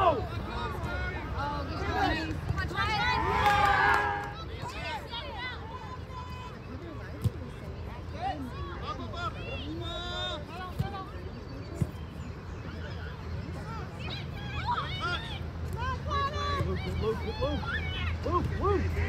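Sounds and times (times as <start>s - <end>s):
spectators shouting: 2.8s - 5.0s.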